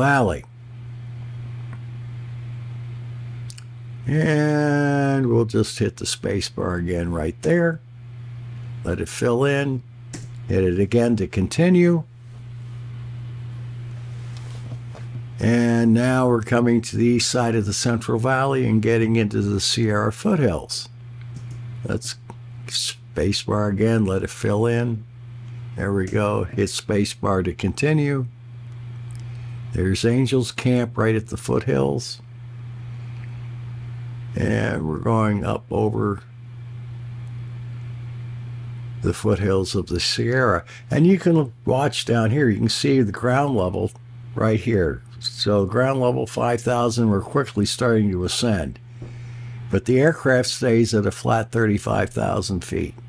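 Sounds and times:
low hum: 0.0 - 53.0.

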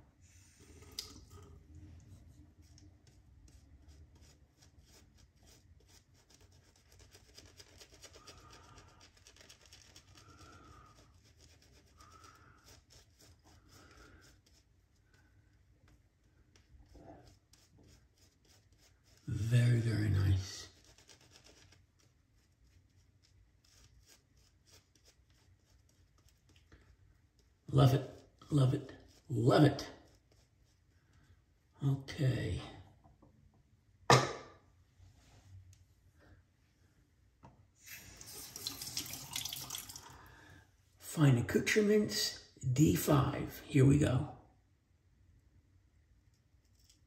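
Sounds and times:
shaving brush scrubbing stubble: 0.7 - 31.2.

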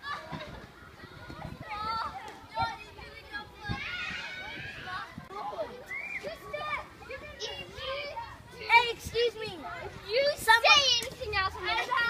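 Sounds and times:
young children chattering and calling: 0.0 - 12.0.

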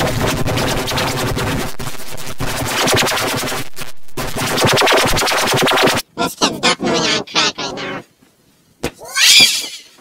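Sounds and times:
distorted high-pitched squeal: 0.0 - 6.0.

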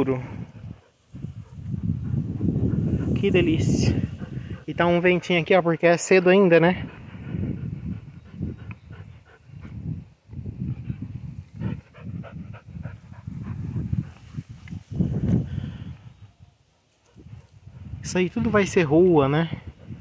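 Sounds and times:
dog breathing and sniffing: 0.0 - 16.3
wind gusting on microphone: 0.0 - 20.0.

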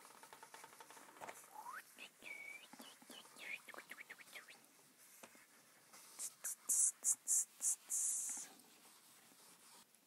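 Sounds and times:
eraser rubbing on whiteboard: 5.0 - 10.0.

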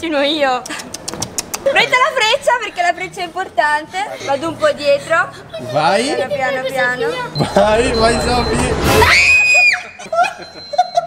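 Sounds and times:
girl screaming: 9.0 - 10.0
girl laughing: 9.1 - 11.0.

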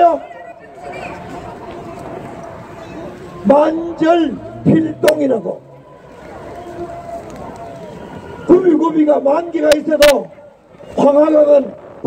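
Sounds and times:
faint indistinct voices: 0.0 - 8.7
outdoor background noise: 0.0 - 12.0.

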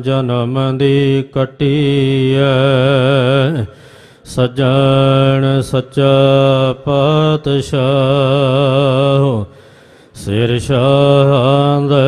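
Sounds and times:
man chanting melodically: 0.0 - 3.7, 4.3 - 9.5, 10.2 - 12.0.

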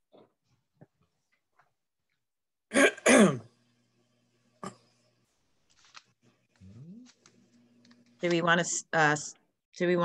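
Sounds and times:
person clearing their throat: 2.7 - 3.5, 4.6 - 4.8.

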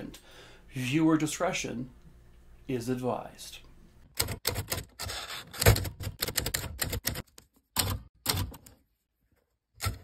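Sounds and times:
typewriter keys clacking: 5.6 - 8.6.

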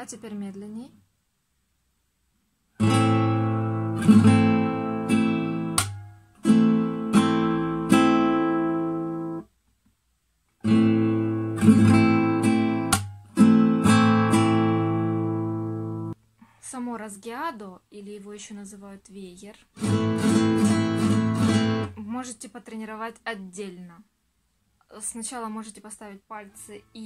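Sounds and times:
nylon-string guitar strumming: 2.8 - 9.4, 10.6 - 16.2, 19.8 - 22.0.

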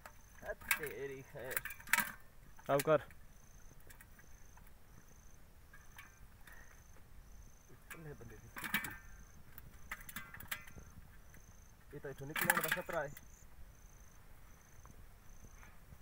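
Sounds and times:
insect chirping: 0.0 - 16.0.

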